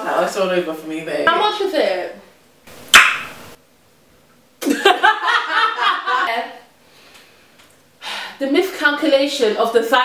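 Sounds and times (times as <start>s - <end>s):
sharp hit: 2.9s - 3.6s.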